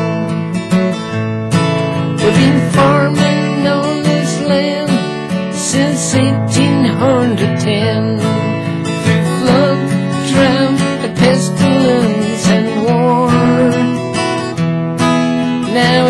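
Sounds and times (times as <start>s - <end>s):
man singing: 0.0s - 0.5s, 2.2s - 14.1s, 15.6s - 16.0s
acoustic guitar strumming: 0.0s - 16.0s.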